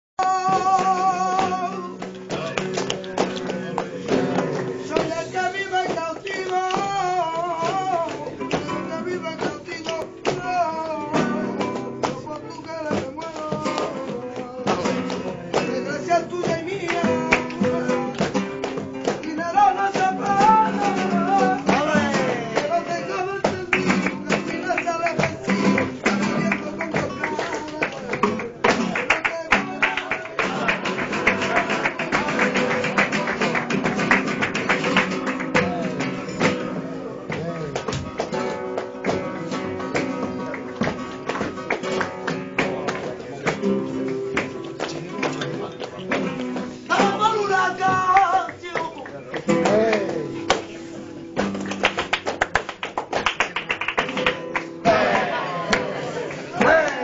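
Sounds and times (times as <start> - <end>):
person singing: 0.2 - 33.2
acoustic guitar: 0.2 - 57.0
rhythmic hand-clapping: 0.2 - 57.0.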